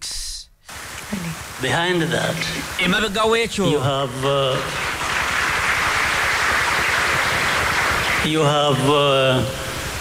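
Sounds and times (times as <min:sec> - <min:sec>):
steady static hiss: 0:00.0 - 0:10.0.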